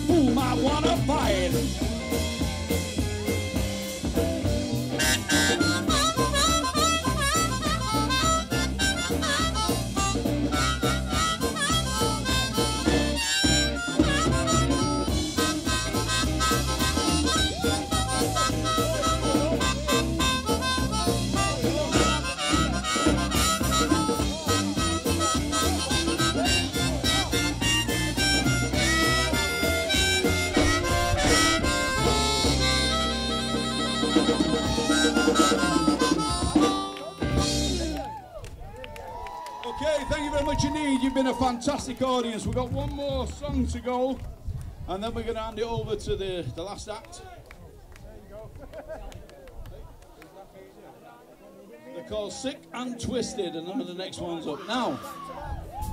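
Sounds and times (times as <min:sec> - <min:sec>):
harmonica lead: 0:00.0 - 0:38.1
drums keeping a steady beat: 0:00.0 - 0:47.0, 0:52.4 - 0:55.9
blues band playing: 0:00.0 - 0:47.2, 0:52.0 - 0:55.9.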